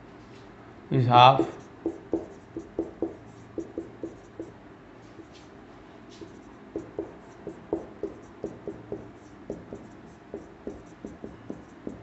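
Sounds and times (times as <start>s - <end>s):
marker pen squeaking on whiteboard: 6.1s - 12.0s.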